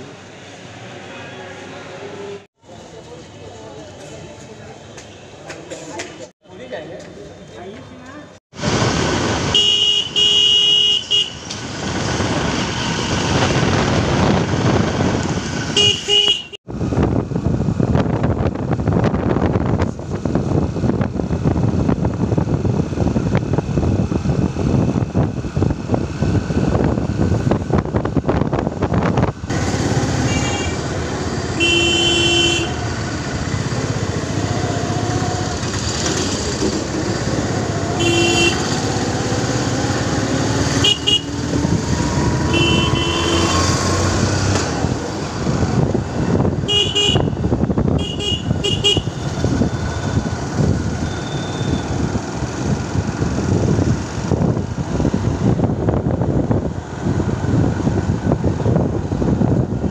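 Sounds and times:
vehicle engine and road noise: 0.0 - 59.9
vehicle horn toots: 9.5 - 11.4, 15.8 - 16.6, 30.2 - 30.8, 31.6 - 32.8, 38.0 - 38.7, 40.8 - 41.3, 42.5 - 43.7, 46.7 - 49.3.

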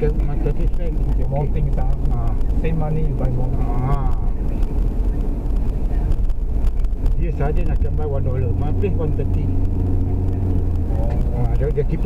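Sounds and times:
tyre and engine rumble in car cabin: 0.0 - 12.0.

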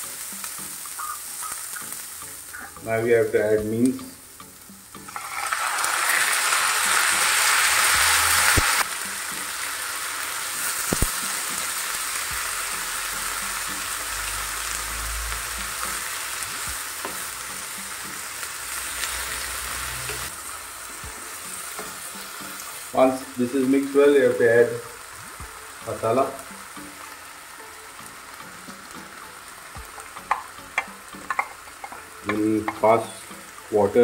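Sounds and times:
meat sizzling in a pan: 0.0 - 34.0
wooden spatula knocking pan: 30.2 - 32.9.

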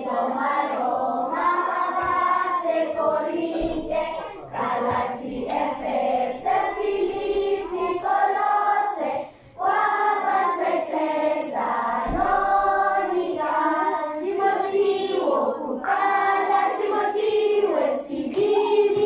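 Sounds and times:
children singing: 0.0 - 19.0.

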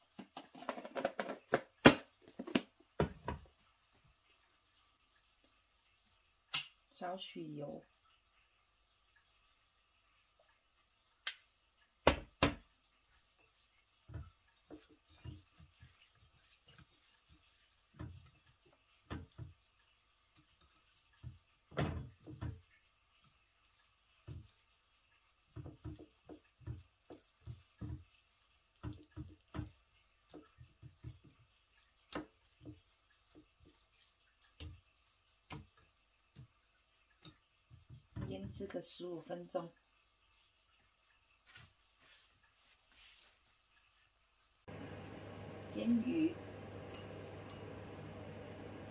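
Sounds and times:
wet slaps and squelches: 11.2 - 11.5.

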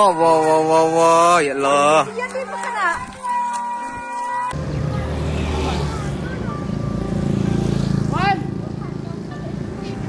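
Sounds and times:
people's voices: 0.0 - 10.0
motorbike engines running: 4.5 - 10.0.

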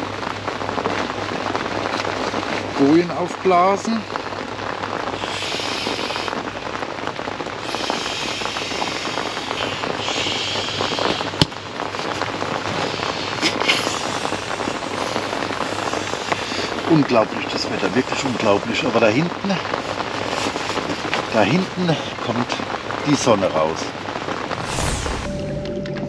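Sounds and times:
rain on a tent: 0.0 - 26.0
person blowing air into valve: 5.2 - 6.4, 7.6 - 11.4, 12.7 - 16.8.

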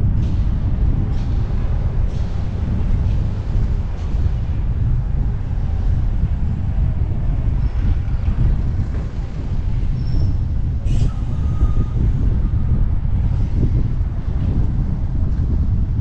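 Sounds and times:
city traffic roar: 0.0 - 16.0
wind rumbling on microphone: 0.0 - 16.0.

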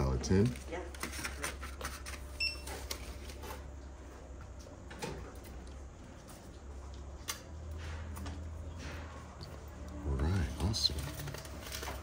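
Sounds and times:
paper handling: 0.0 - 3.7, 10.3 - 12.0.

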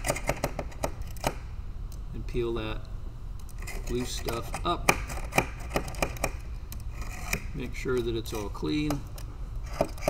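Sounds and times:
knife scraping a blade: 3.6 - 6.2, 6.9 - 8.8, 9.6 - 10.0.

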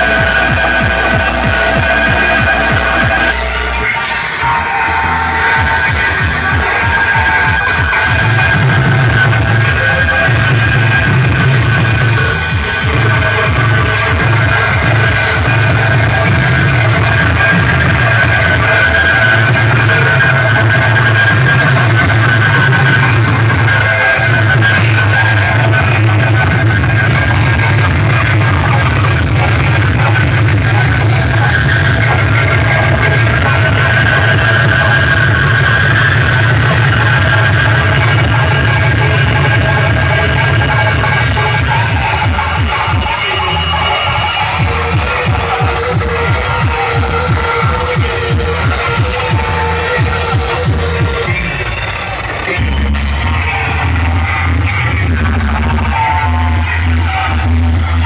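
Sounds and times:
loud music with heavy bass: 0.0 - 58.0.

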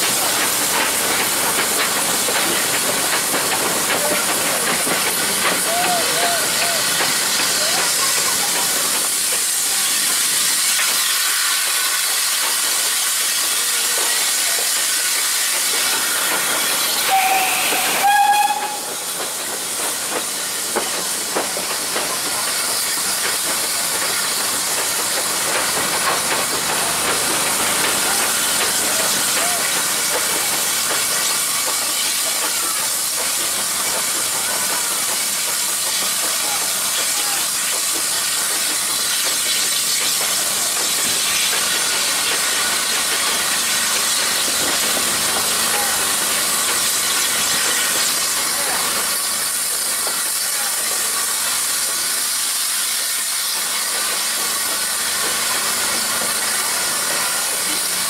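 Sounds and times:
steam train hissing: 0.0 - 58.0
steam whistle toots: 17.0 - 19.0.

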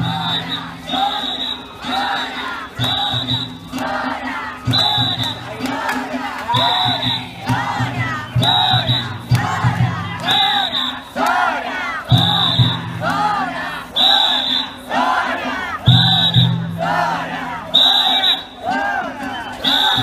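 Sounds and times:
crowd shouting rhythmic chant: 0.0 - 20.0
festival music: 0.0 - 20.0.

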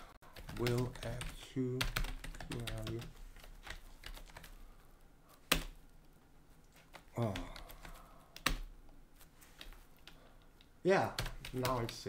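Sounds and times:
computer keyboard keys clicking: 0.4 - 4.6, 6.7 - 8.7, 9.6 - 12.0.

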